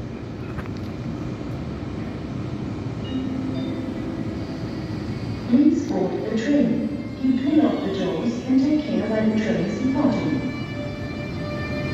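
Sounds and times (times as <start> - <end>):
electric locomotive rumble: 0.0 - 11.9.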